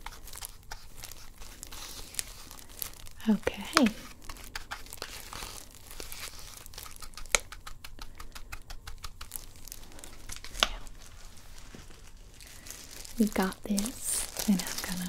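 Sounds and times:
plastic gloves crinkling: 0.0s - 15.0s.

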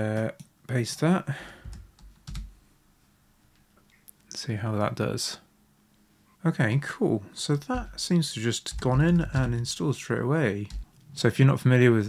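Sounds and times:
keyboard keystroke: 7.7s - 8.0s, 8.7s - 9.7s.

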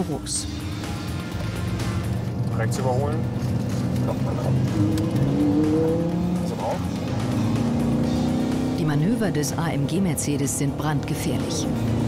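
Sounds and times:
background music: 0.0s - 12.0s
car engine accelerating: 0.4s - 12.0s.

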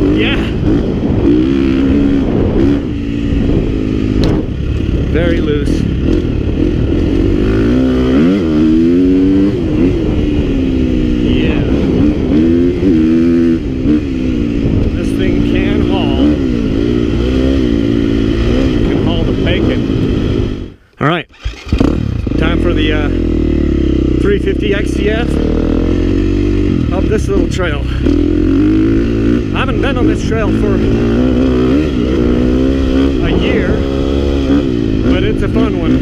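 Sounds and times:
dirt bike engine revving: 0.0s - 36.0s.

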